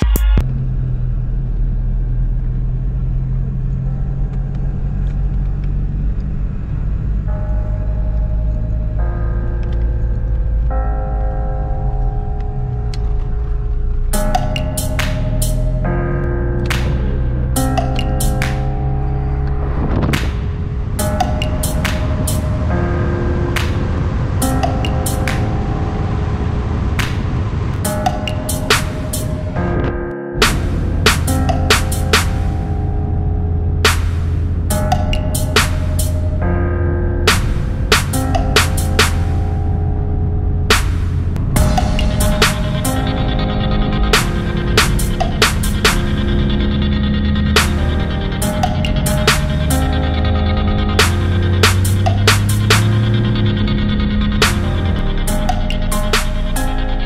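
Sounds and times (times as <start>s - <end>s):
car engine and road rumble: 0.0s - 57.0s
soft sustained music chords: 0.0s - 57.0s
sharp drum hit: 40.7s - 46.2s.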